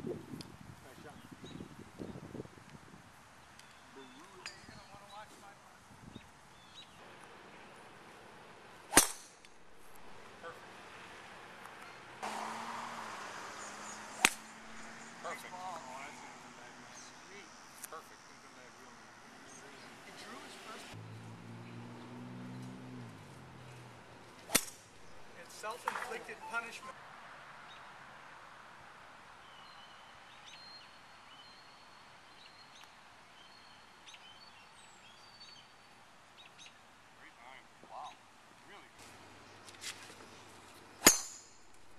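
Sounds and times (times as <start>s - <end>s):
golf club striking ball: 8.9s - 10.1s, 14.1s - 14.9s, 24.4s - 26.1s, 41.0s - 41.9s.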